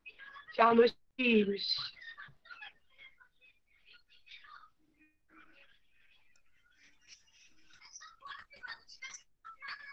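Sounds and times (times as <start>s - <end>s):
faint whispery voices: 0.0s - 9.9s.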